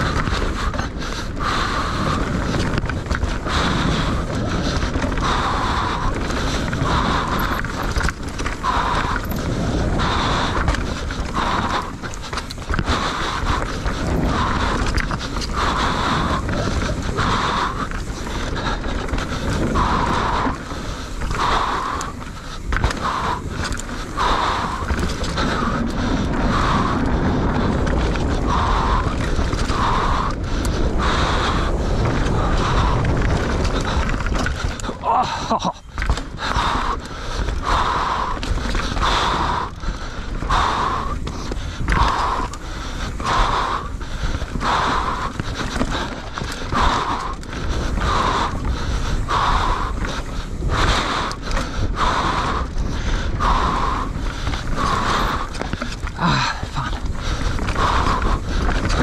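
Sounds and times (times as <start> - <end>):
bike tyres rumbling on dirt: 0.0 - 59.0
rider breathing hard: 0.0 - 59.0.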